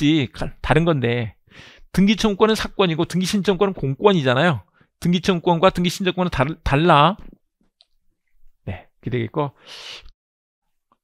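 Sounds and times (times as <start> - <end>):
man lecturing: 0.0 - 7.4, 8.6 - 10.1.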